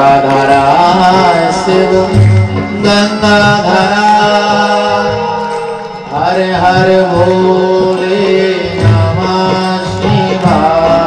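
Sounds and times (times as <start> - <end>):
devotional singing: 0.0 - 11.0.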